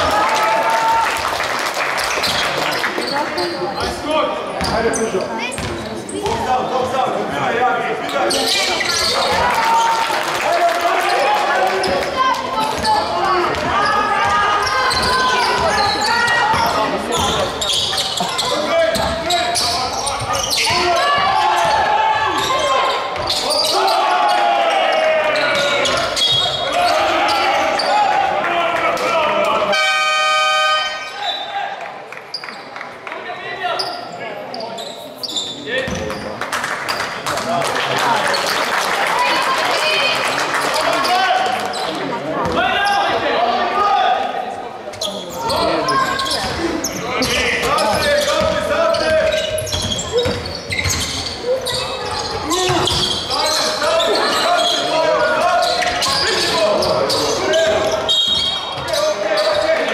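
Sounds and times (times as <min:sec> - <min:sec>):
voices calling and shouting: 0:02.4 - 0:29.8, 0:38.0 - 0:59.9
basketball bouncing on wooden court: 0:05.5 - 0:06.5, 0:12.6 - 0:17.6, 0:47.3 - 0:53.3.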